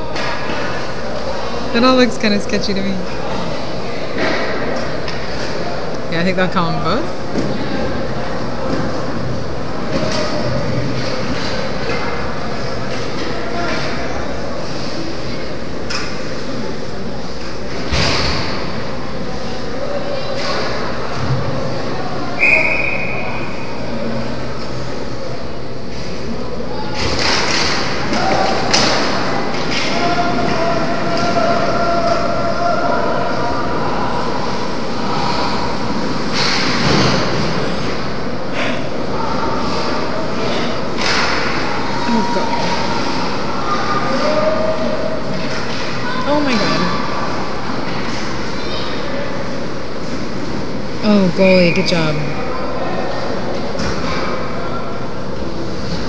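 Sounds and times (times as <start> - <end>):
whistle: 22.4 - 23.4
pucks and sticks hitting boards: 27.0 - 32.4, 35.0 - 38.0, 39.5 - 42.0, 45.3 - 46.6.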